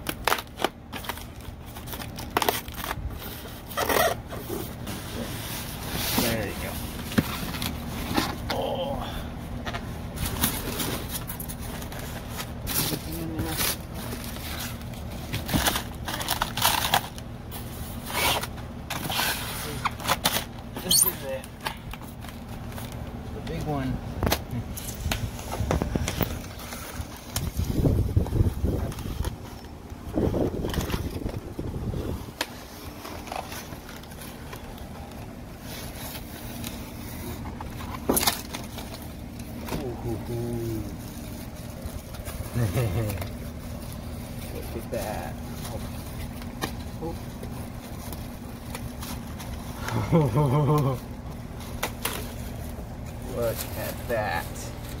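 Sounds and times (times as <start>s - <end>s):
styrofoam cracking: 0.0s - 4.2s, 10.2s - 23.0s
styrofoam and plastic wrap rustling: 0.0s - 55.0s.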